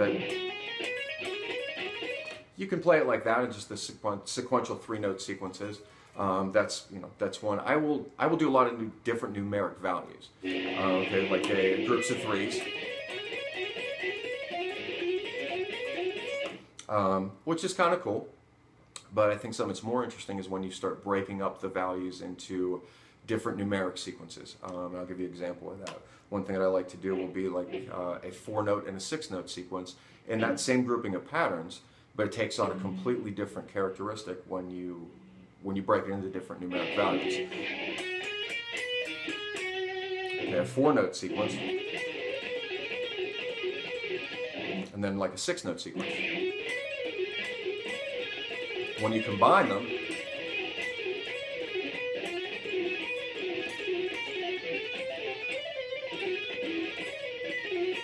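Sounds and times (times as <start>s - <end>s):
electric guitar legato run: 10.4s - 16.6s, 32.6s - 33.4s, 36.7s - 44.9s, 46.0s - 58.0s.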